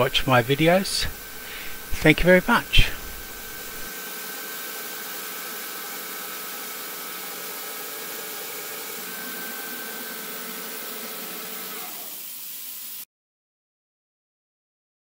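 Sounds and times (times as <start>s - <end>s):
lathe cutting steel hiss: 0.0s - 13.1s.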